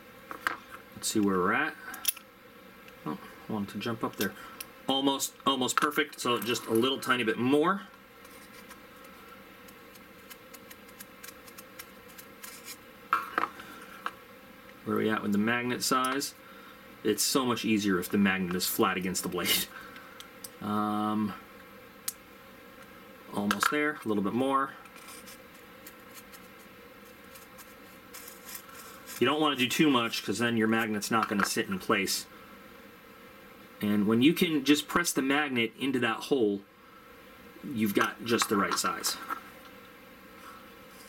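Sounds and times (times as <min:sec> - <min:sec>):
file scraping plastic: 0:09.9 - 0:12.8
file scratching plastic: 0:09.9 - 0:12.8, 0:25.0 - 0:29.2.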